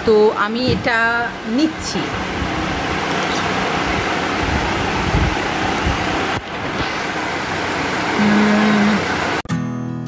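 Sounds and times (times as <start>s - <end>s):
steady low hum: 0.0s - 9.4s
fan rushing into microphone: 0.7s - 9.4s.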